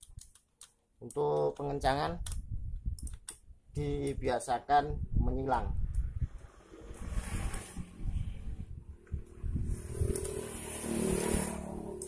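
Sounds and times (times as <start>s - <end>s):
vehicle engine in background: 6.0s - 12.0s.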